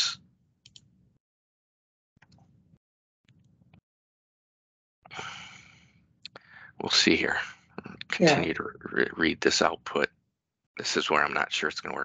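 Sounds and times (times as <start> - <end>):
person sighing: 5.1 - 5.6
person speaking: 6.8 - 10.1, 10.8 - 12.0.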